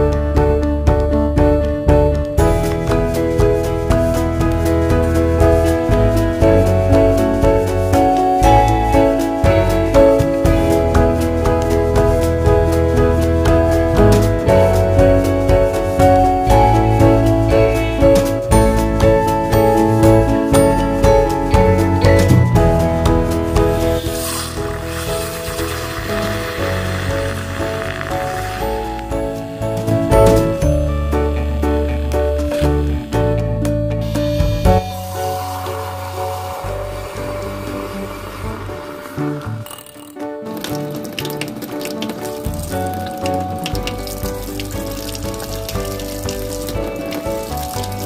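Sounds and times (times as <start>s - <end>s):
background music: 0.0s - 48.0s
tap water running into sink: 23.6s - 29.2s, 40.4s - 48.0s
water splashing over whisk: 23.7s - 28.9s, 40.4s - 48.0s
milk frother whirring: 23.9s - 28.9s, 35.0s - 40.1s.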